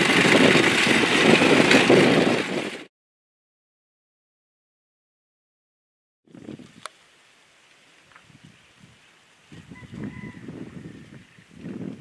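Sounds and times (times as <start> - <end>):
uneven rustling rumble: 0.0 - 2.9
faint steady hiss: 6.5 - 9.6.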